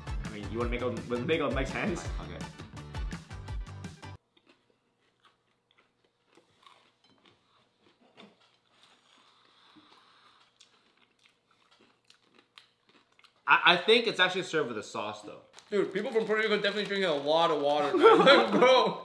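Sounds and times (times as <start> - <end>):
music: 0.0 - 4.2
chewing and crunching: 4.2 - 13.5, 15.2 - 18.5.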